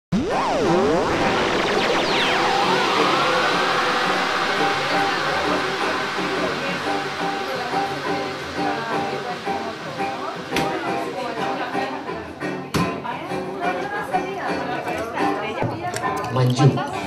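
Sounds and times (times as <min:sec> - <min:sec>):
music with sweeping pitch glides: 0:00.1 - 0:15.5.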